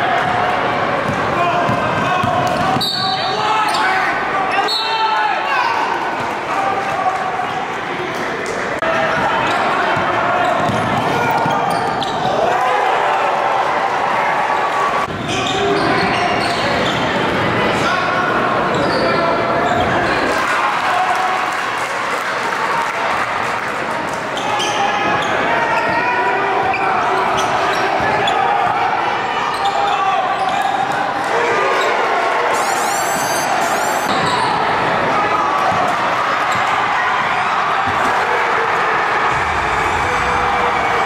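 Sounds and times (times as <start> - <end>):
crowd chatter and shouting: 0.0 - 41.0
sneaker squeaks: 2.7 - 4.0, 10.4 - 12.3, 15.2 - 17.1, 18.7 - 20.2, 24.4 - 28.4, 29.5 - 30.8, 32.6 - 34.6.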